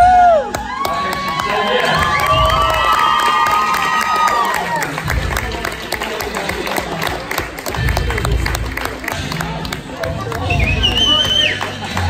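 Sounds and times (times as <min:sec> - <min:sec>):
crowd cheering and screaming: 0:00.0 - 0:05.1.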